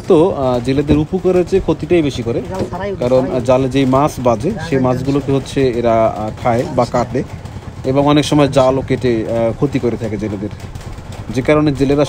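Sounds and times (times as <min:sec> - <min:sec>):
man talking: 0:00.0 - 0:10.6, 0:11.2 - 0:12.0.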